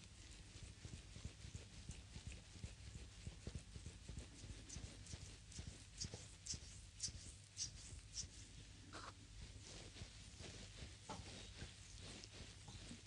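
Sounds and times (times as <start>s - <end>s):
hands rubbing skin: 0.0s - 13.0s.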